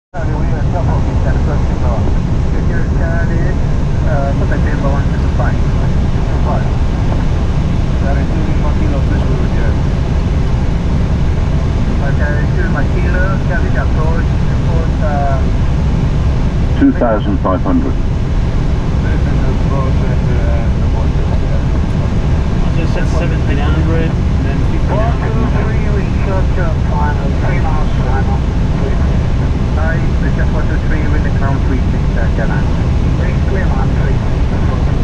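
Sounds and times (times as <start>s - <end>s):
muffled voices: 0.2s - 7.0s, 7.9s - 10.7s, 11.9s - 15.6s, 16.8s - 18.0s, 19.0s - 35.0s
airflow and engine drone: 0.2s - 35.0s.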